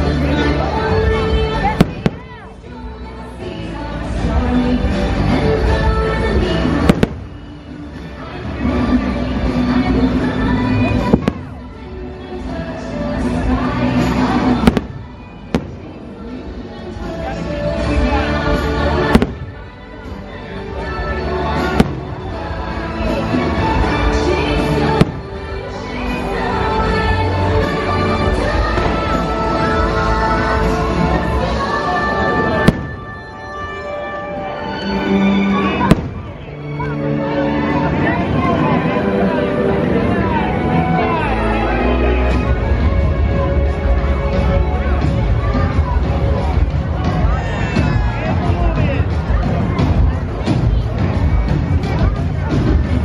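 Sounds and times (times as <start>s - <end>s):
loud show music: 0.0s - 53.0s
firework bang: 6.9s - 7.3s, 32.6s - 33.2s, 35.9s - 36.3s.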